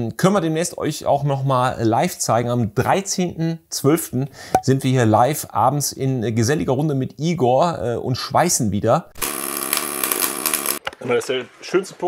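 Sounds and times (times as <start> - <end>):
electric arc welding buzz: 9.2 - 10.8.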